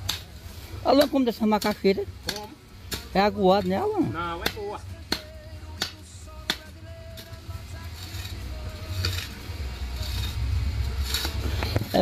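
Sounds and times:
hoe striking dry soil: 0.0s - 7.4s
scraping and digging soil: 0.0s - 12.0s.

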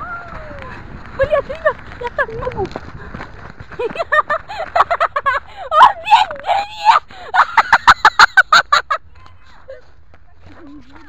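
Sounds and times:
children shrieking and laughing: 0.0s - 2.8s, 3.6s - 11.0s.

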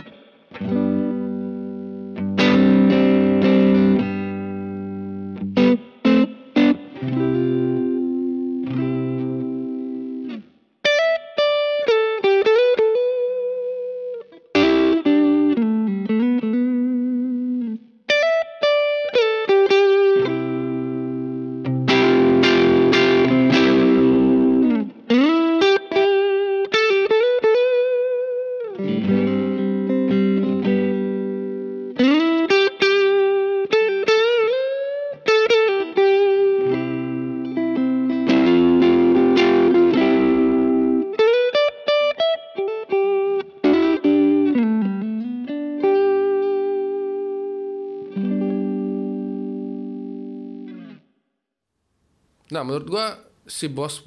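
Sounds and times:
overdriven electric guitar: 0.0s - 51.0s.

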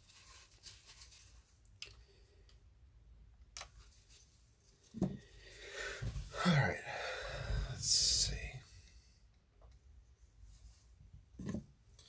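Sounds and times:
man speaking: 6.3s - 8.7s.

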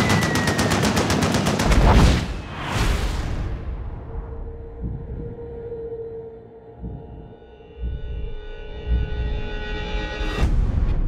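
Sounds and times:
automatic gunfire: 0.0s - 2.0s.

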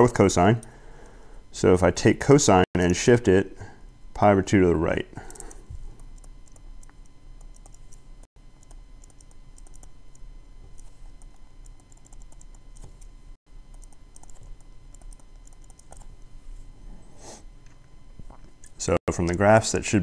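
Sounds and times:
steady electrical hum: 0.0s - 20.0s
stylus tapping and writing on screen: 5.2s - 13.1s, 13.7s - 16.3s.

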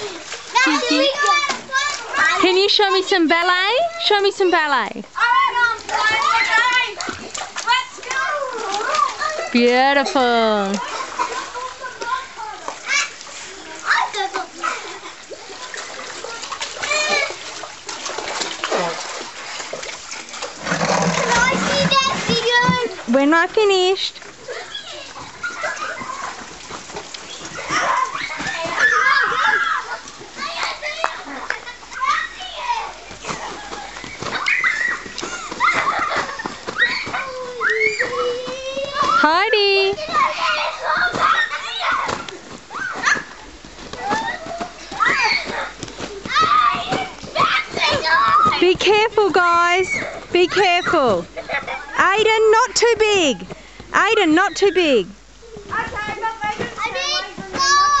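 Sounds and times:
children shouting at play: 0.0s - 3.1s, 3.7s - 17.7s, 20.8s - 23.1s, 24.3s - 58.0s
child yelping: 36.7s - 39.2s.

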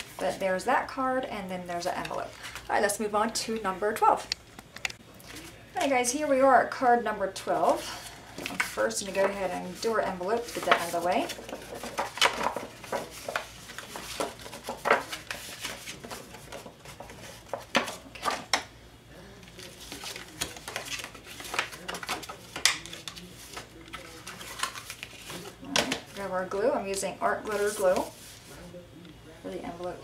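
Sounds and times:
paper being folded and creased: 7.6s - 18.4s, 19.4s - 28.5s.

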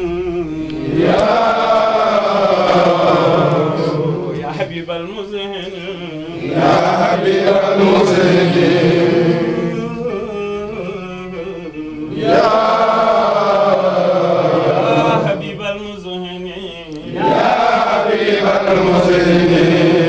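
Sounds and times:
men chanting together: 0.0s - 4.8s, 5.6s - 20.0s.

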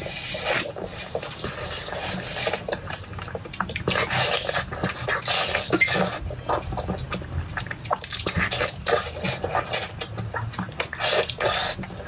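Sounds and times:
wet chewing and lip-smacking: 0.0s - 12.0s.

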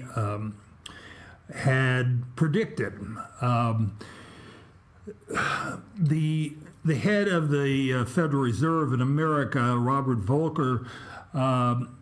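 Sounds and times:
person clearing throat: 5.1s - 6.0s.

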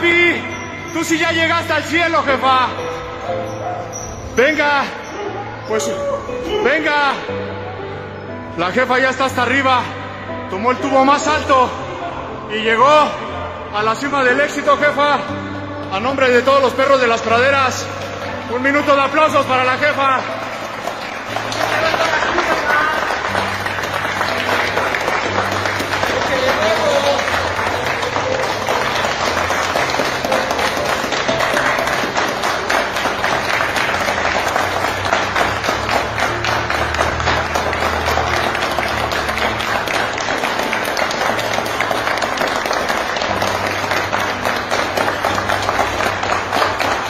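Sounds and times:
music: 0.0s - 47.0s
crowd applauding: 17.1s - 47.0s.

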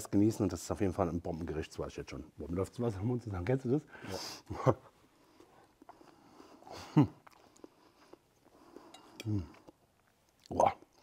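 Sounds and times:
man speaking: 0.0s - 4.9s.

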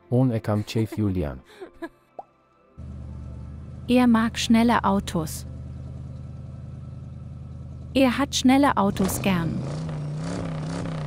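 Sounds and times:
car engine idling: 2.8s - 10.9s.

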